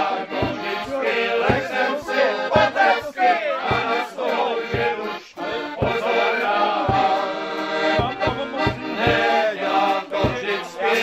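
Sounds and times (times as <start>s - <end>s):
accordion playing folk tune: 0.0s - 11.0s
bass drum beats: 0.4s - 0.8s, 1.4s - 1.8s, 2.5s - 3.0s, 3.7s - 4.1s, 4.7s - 5.0s, 5.8s - 6.1s, 6.8s - 7.2s, 7.9s - 9.4s, 10.2s - 10.6s.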